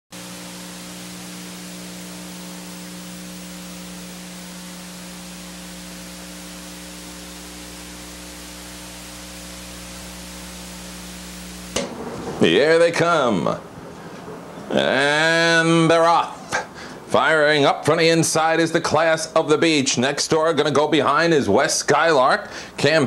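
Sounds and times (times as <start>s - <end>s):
steady hiss: 0.2s - 14.0s
low electrical hum: 0.2s - 23.0s.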